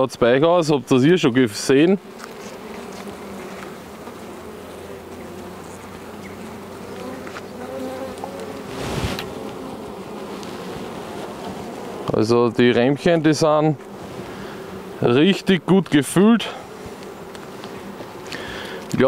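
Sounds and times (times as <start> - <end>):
honeybees humming: 0.0 - 19.0.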